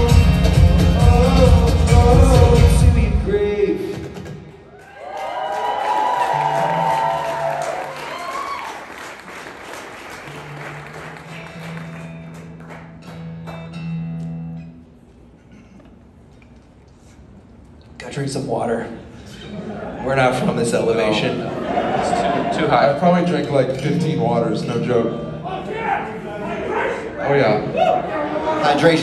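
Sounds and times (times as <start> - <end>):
acoustic song: 0.0 - 4.3, 10.2 - 15.3
crowd applauding and cheering: 4.2 - 14.0.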